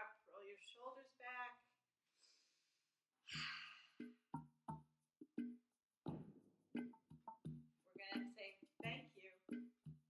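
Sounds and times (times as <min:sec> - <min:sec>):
faint breath: 0:02.1 - 0:04.0
woman sighing: 0:03.3 - 0:04.1.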